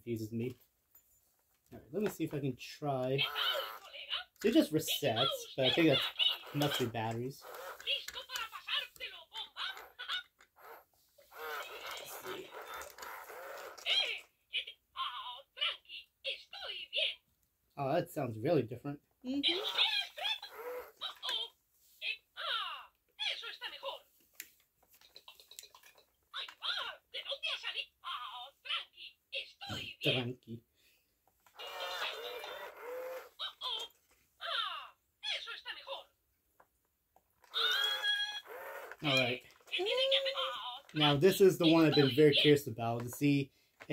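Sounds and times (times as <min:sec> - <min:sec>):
toy talking in squeaky voice: 0:02.0 - 0:17.2, 0:19.3 - 0:24.1, 0:25.0 - 0:30.6, 0:31.5 - 0:36.2, 0:37.4 - 0:43.9.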